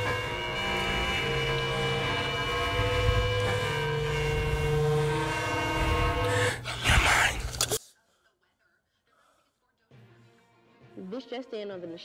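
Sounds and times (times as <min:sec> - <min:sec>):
droning horror film score: 0:00.0 - 0:07.8.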